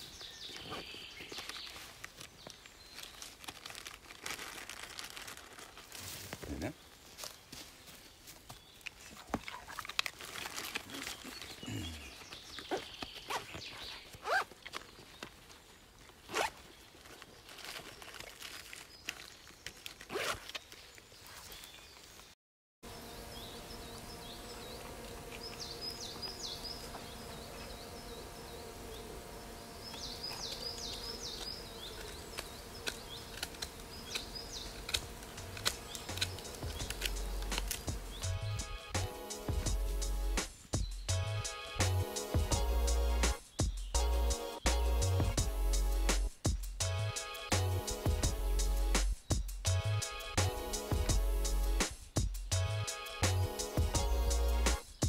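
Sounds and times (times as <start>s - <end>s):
backpack zipper: 12.7s - 14.6s, 16.2s - 16.6s, 20.1s - 20.6s.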